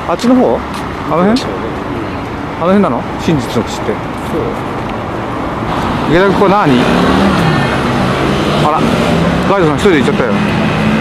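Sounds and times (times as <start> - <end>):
city road traffic: 0.0 - 11.0.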